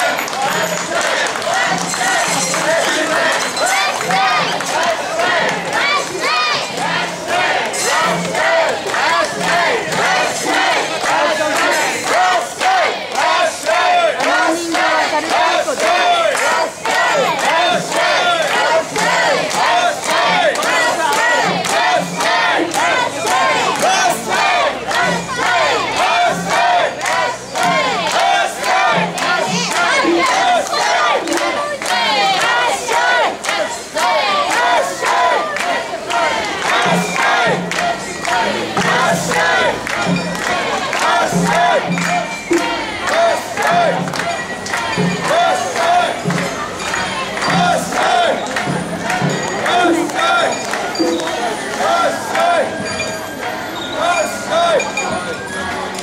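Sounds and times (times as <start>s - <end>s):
crowd shouting rhythmic chant: 0.0s - 56.0s.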